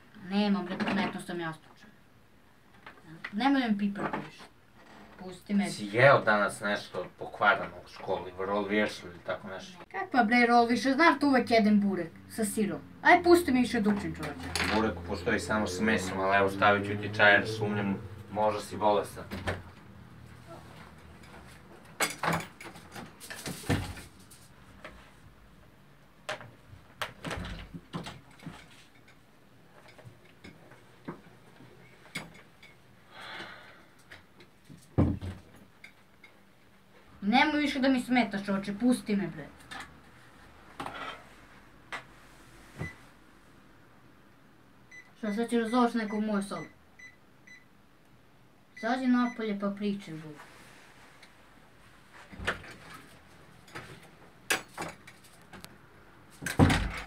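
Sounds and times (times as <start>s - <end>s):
faint electronic beeps: 44.9s - 47.7s.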